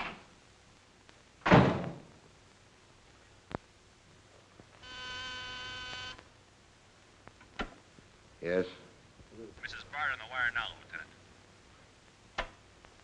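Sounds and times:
door shutting with thud: 0:01.4 - 0:02.1
telephone ringing: 0:04.8 - 0:06.2.

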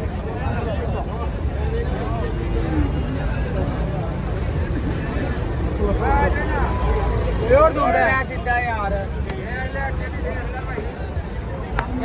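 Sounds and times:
crowd babble: 0:00.0 - 0:12.0
men talking: 0:00.0 - 0:12.0.

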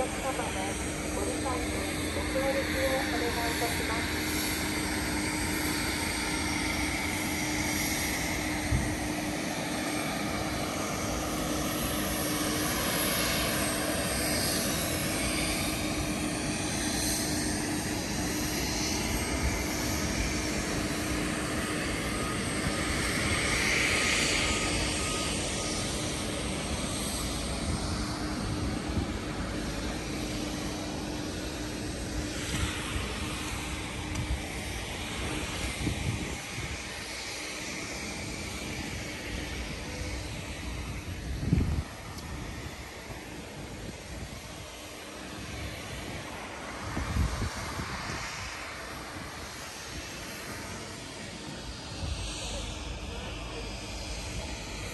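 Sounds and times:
jet engines running: 0:00.0 - 0:54.9
steady low hum: 0:00.0 - 0:54.9.

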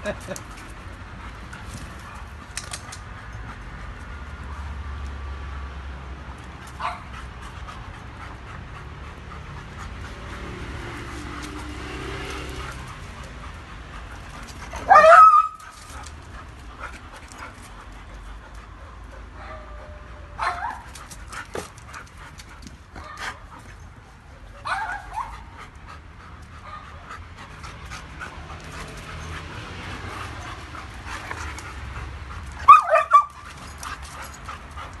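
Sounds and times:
dogs panting: 0:00.0 - 0:35.0
dogs barking: 0:06.8 - 0:07.2, 0:11.9 - 0:16.6, 0:19.1 - 0:22.0, 0:24.4 - 0:25.6, 0:26.5 - 0:35.0.

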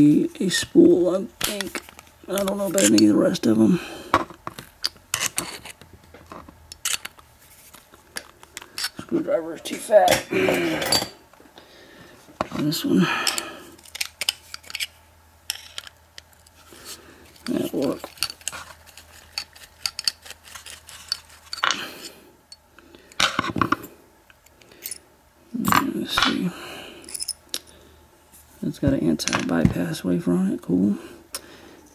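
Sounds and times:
screwdriver clicking and scraping metal: 0:04.8 - 0:05.8, 0:06.7 - 0:07.2, 0:13.3 - 0:16.3, 0:17.4 - 0:21.8
metal parts clattering: 0:17.2 - 0:21.8.

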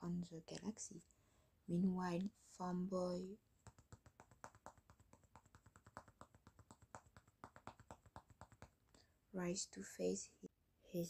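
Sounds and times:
person speaking: 0:00.0 - 0:01.1, 0:01.7 - 0:03.4
rapid light tapping: 0:03.6 - 0:08.8.

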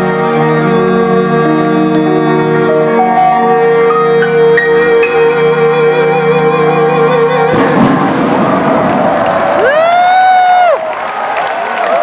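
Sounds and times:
crowd cheering and screaming: 0:07.5 - 0:12.0
person shouting woooo: 0:09.6 - 0:10.8.

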